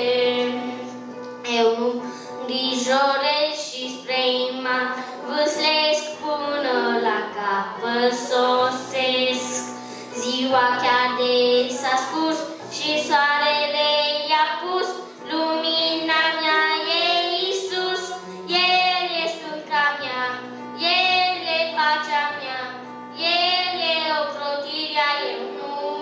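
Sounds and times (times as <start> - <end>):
boy singing into a microphone: 0.0 - 26.0.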